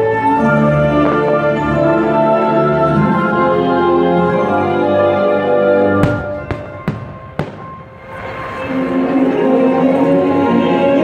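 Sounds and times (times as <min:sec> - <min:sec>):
fireworks show music: 0:00.0 - 0:11.0
firework bang: 0:06.0 - 0:08.4.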